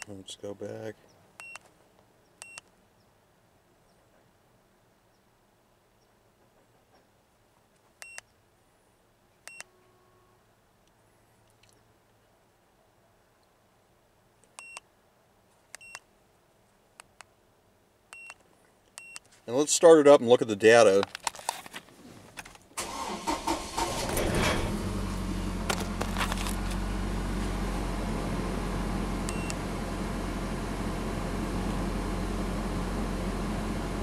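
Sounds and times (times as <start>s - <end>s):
short high key-press beeps: 2.4s - 2.6s, 9.5s - 9.7s, 19.0s - 19.2s, 29.3s - 29.6s.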